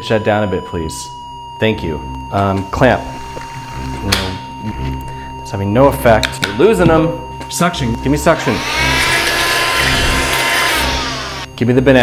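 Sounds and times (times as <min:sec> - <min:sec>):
steady electronic alarm tone: 0:00.0 - 0:12.0
low hum: 0:08.4 - 0:11.5.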